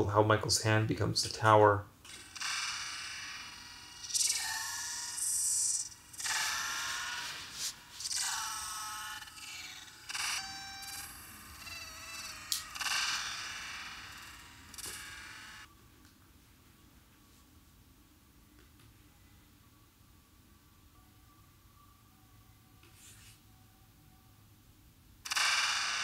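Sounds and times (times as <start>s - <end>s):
sound effect bursts: 2.1s - 15.5s
ringing pitched tones: 2.1s - 15.7s.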